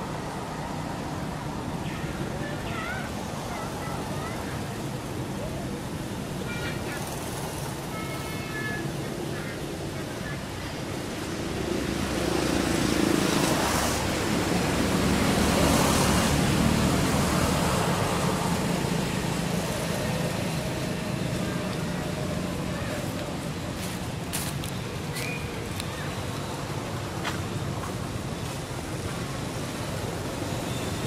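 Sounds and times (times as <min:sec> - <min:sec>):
vehicle passing: 0:10.3 - 0:31.0.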